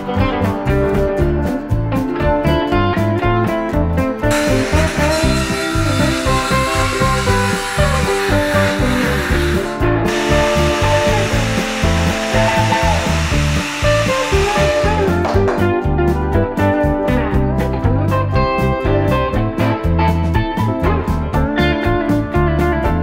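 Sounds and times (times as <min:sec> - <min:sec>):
guitar background music: 0:00.0 - 0:23.0
power planer shaving wood: 0:04.3 - 0:15.4.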